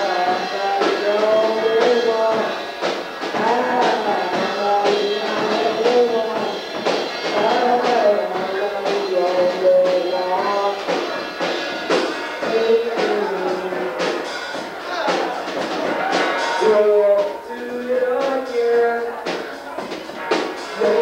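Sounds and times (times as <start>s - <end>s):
drums: 0.0s - 21.0s
person singing: 0.0s - 21.0s
rock music: 0.0s - 21.0s.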